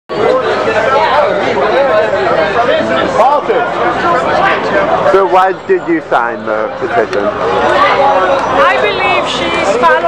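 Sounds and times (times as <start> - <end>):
chatter of voices: 0.1 - 10.0.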